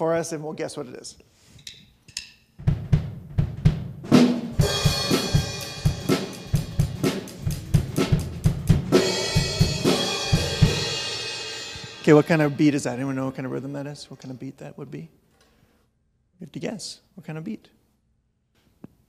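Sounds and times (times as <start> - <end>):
drum kit playing rock beat: 2.6 - 13.4.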